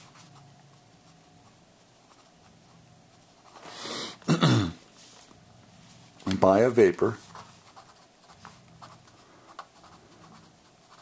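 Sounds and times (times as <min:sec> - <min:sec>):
pen scratching on paper: 0:01.4 - 0:03.7, 0:07.3 - 0:11.0.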